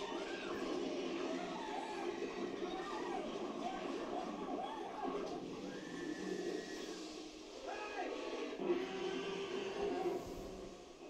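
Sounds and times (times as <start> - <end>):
film soundtrack from television: 0.0 - 11.0.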